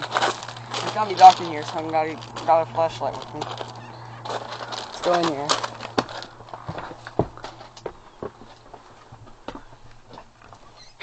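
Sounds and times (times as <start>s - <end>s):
footsteps and knocks on floor: 6.0s - 10.2s.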